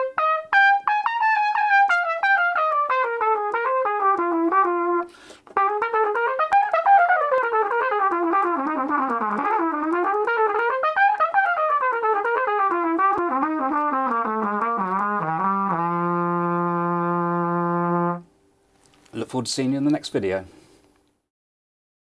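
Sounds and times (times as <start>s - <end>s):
solo trumpet playing jazz: 0.0s - 18.4s.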